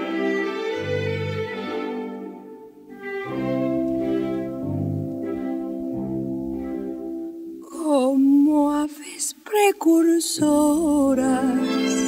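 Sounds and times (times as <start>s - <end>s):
orchestral strings sustained chords: 0.0s - 8.9s, 10.4s - 12.0s.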